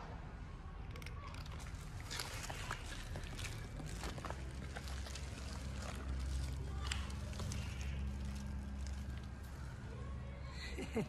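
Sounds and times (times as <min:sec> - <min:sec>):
cat crunching dry kibble: 0:00.9 - 0:09.8.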